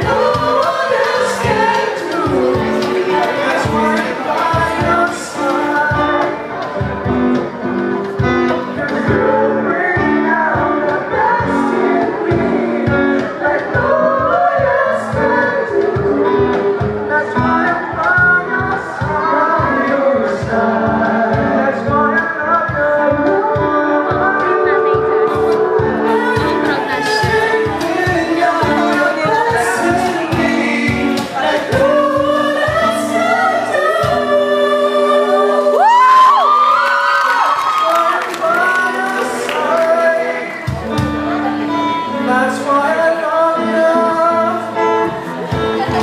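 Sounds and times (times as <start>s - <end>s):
voices singing in harmony: 0.0s - 6.8s, 8.6s - 46.0s
acoustic guitar: 0.0s - 46.0s
low thumping beat: 22.7s - 32.9s.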